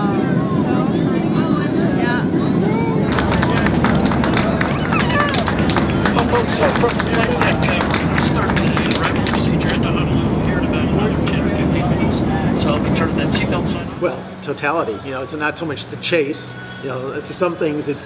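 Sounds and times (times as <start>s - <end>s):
jet engine rumble: 0.0s - 14.5s
passengers talking and exclaiming: 0.0s - 18.0s.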